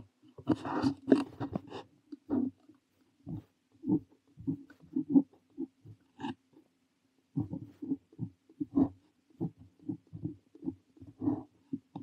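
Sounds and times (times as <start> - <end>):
pen nib scratching on paper: 7.4 - 12.0.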